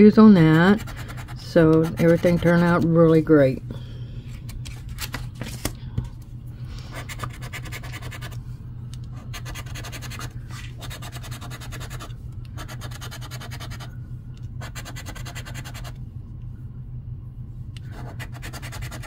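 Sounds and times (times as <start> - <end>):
steady low hum: 0.0 - 19.0
coin scratching lottery ticket: 7.0 - 8.4, 9.3 - 13.9, 14.6 - 15.9, 17.9 - 19.0.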